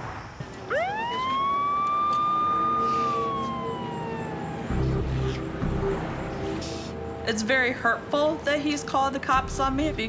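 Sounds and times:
police siren wailing: 0.6 - 6.6.

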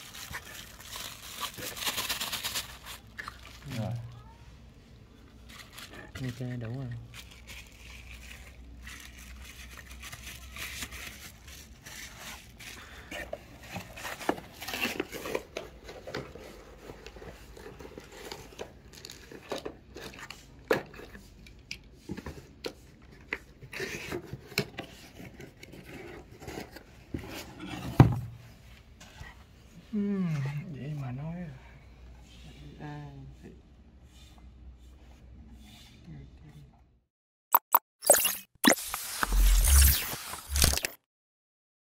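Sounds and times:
packaging rustling and crinkling: 0.0 - 4.2, 5.2 - 20.6.

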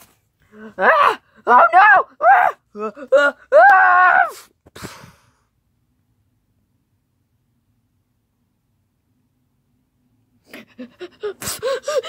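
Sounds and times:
person giggling: 10.5 - 12.0.

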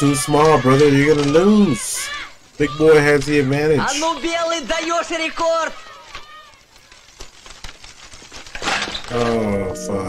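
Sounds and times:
bicycles rattling over rough ground: 0.0 - 10.0.

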